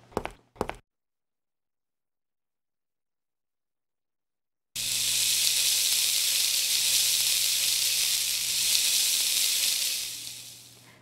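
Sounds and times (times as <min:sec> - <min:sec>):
heavy rain hiss: 0:04.8 - 0:10.8.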